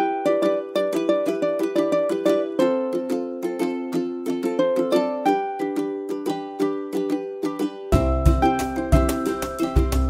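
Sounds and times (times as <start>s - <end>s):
plucked string tune: 0.0s - 10.0s.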